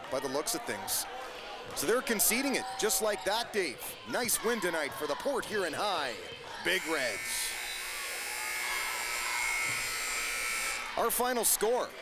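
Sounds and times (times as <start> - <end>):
scoreboard horn buzzing: 6.7 - 10.9.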